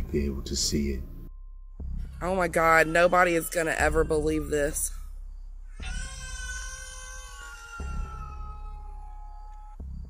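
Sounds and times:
animal cry falling in pitch: 5.7s - 9.8s.

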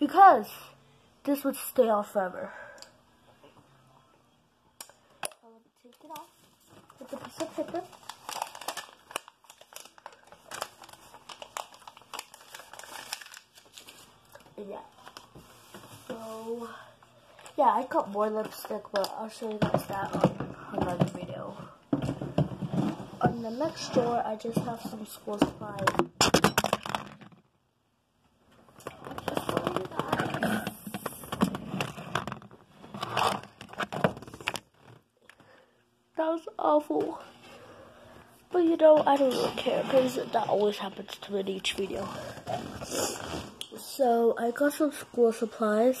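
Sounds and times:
paper crinkling and rustling: 5.9s - 16.4s, 28.8s - 35.0s.

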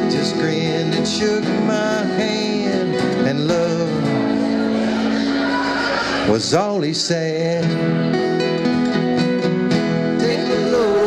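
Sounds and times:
strummed acoustic guitars: 0.0s - 11.0s.

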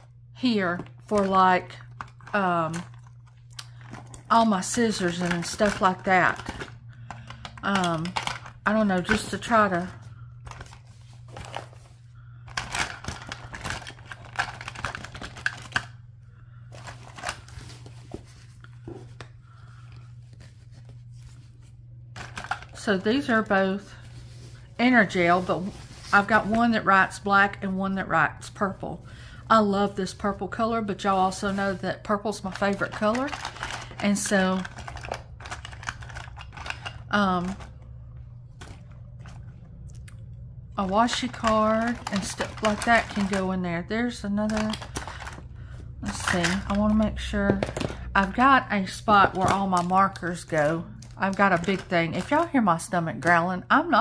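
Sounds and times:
steady low hum: 0.0s - 54.0s
rustling of pencil pouches: 0.8s - 15.9s, 16.6s - 26.7s, 31.0s - 37.8s, 40.8s - 43.6s, 44.4s - 52.5s.

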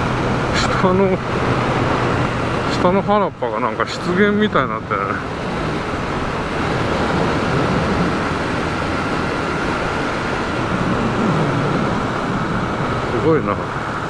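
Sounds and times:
wind rush and road noise: 0.0s - 14.0s.

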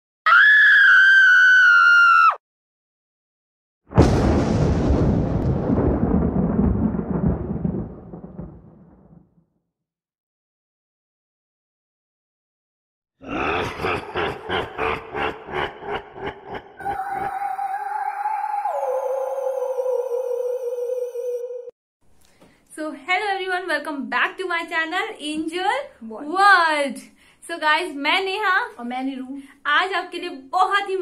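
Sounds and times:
high-pitched scream: 0.3s - 2.4s, 16.8s - 21.7s
deep growling pulsing sound: 13.2s - 21.6s.

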